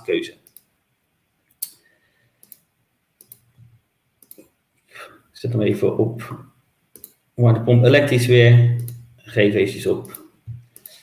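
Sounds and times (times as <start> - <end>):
computer mouse clicks: 0.4 - 0.7, 2.4 - 3.6, 4.2 - 4.5, 6.9 - 7.2, 8.8 - 9.0, 10.0 - 11.0.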